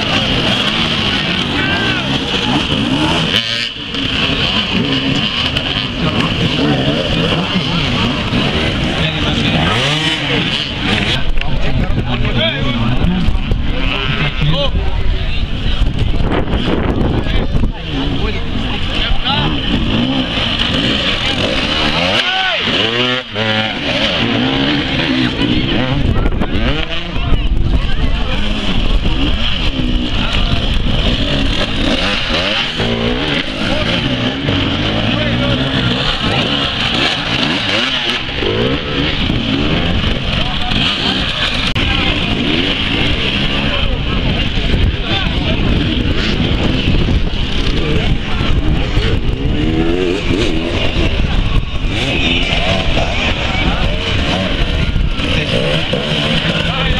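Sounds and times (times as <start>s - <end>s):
motorcycle engines revving: 0.0s - 56.9s.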